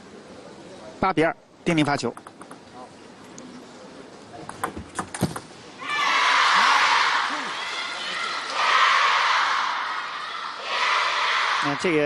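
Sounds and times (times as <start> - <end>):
table tennis ball clicks: 2.0 - 2.8, 4.4 - 5.5
crowd cheering and applause: 5.8 - 11.7.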